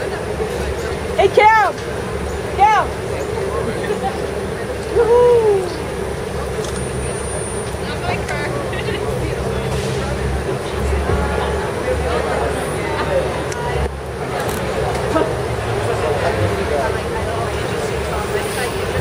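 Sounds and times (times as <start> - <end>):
crowd chatter: 0.0 - 19.0
low traffic rumble: 0.0 - 19.0.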